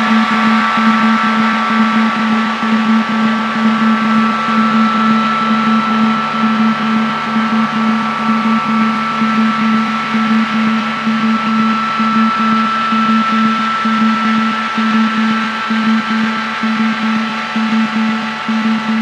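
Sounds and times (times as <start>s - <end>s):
high whine: 0.0s - 19.0s
low hum: 0.0s - 19.0s.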